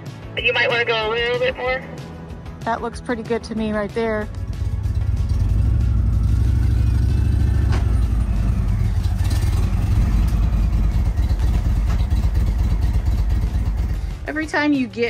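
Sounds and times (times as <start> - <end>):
motorcycle engine low rumble: 3.4 - 15.0.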